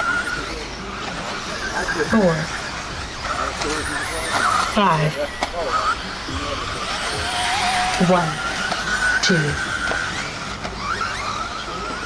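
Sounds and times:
rc car motor whine: 0:00.0 - 0:12.0.

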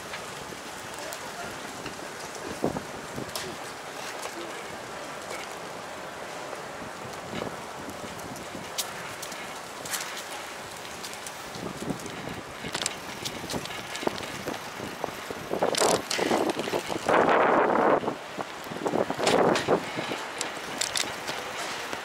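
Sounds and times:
bicycle tyre and road noise: 0:00.0 - 0:22.0
light clicks and rattles: 0:07.2 - 0:14.8, 0:15.6 - 0:17.2, 0:19.2 - 0:22.0.

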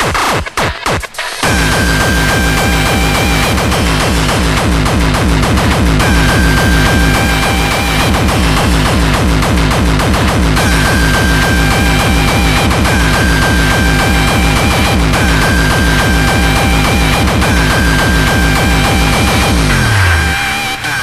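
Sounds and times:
fast kick drum: 0:00.0 - 0:20.0
high held synth note: 0:01.4 - 0:21.0.

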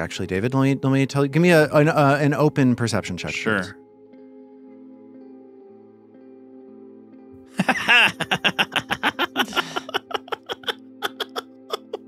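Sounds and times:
soft ambient music: 0:00.0 - 0:12.0
people laughing: 0:07.6 - 0:12.0.

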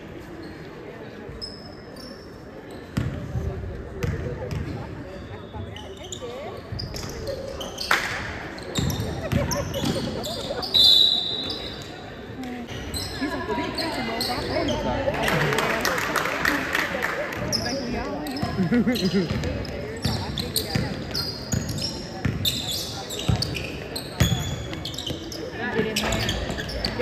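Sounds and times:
voices in a gym: 0:00.0 - 0:27.0.

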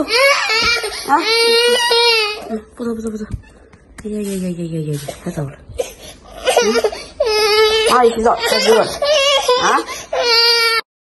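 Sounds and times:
toddler crying: 0:00.0 - 0:02.5, 0:06.4 - 0:10.8.

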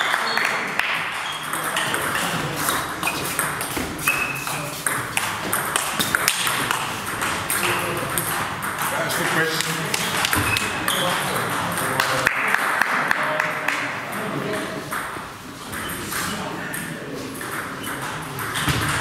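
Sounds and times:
table tennis ball clicking: 0:01.3 - 0:08.9.

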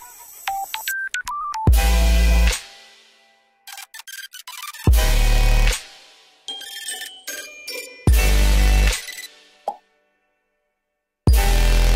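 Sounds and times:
buzzing low synth note: 0:11.3 - 0:11.9.

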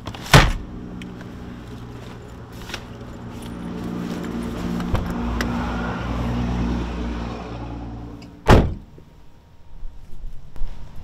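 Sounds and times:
car door slamming: 0:08.4 - 0:09.0.

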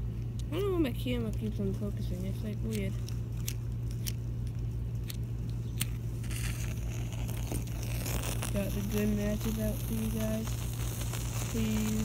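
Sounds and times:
steady low hum: 0:00.0 - 0:12.0
match struck and burning: 0:05.1 - 0:12.0.

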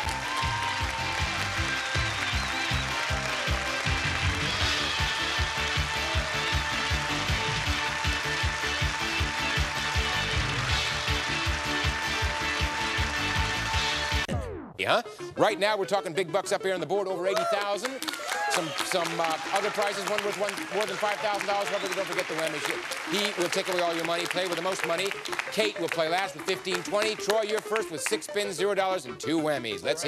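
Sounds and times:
studio applause: 0:00.0 - 0:14.3, 0:17.2 - 0:28.7
upbeat game show music: 0:00.0 - 0:30.0.

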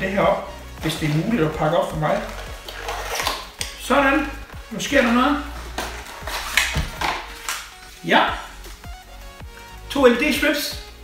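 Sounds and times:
faint music: 0:00.0 - 0:11.0
paper packaging rustling: 0:01.0 - 0:03.6, 0:04.3 - 0:08.6.

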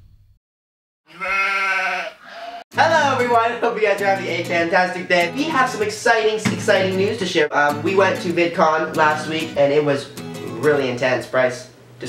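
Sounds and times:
bleat-like voice sound: 0:01.1 - 0:02.6.

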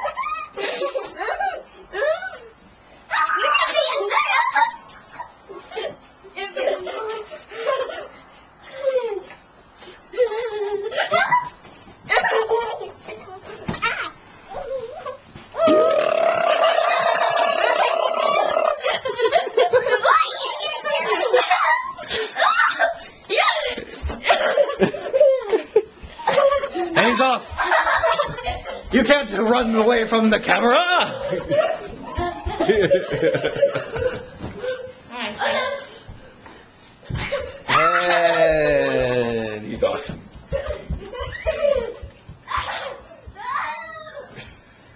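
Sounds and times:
child crying and squealing: 0:21.8 - 0:23.6, 0:42.5 - 0:44.4
running footsteps: 0:23.6 - 0:35.0, 0:35.6 - 0:43.7
child yelling: 0:42.5 - 0:44.3.

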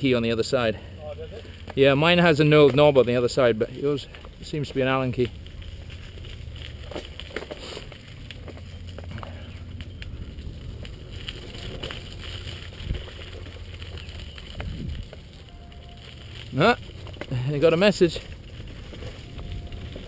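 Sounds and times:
bike clicks and rattles: 0:00.0 - 0:20.0
bike tyres rumbling on dirt: 0:00.0 - 0:20.0.

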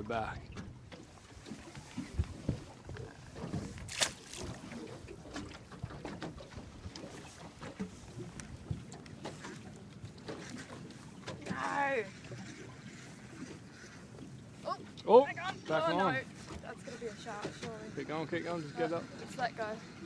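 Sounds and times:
low knocks aboard boat: 0:00.0 - 0:18.3.

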